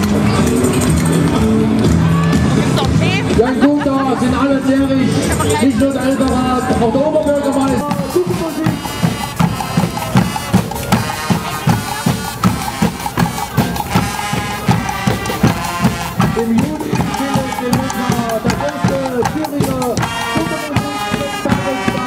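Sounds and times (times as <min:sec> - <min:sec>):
marching drums: 0:05.1 - 0:22.0
sustained brass tones: 0:07.8 - 0:22.0.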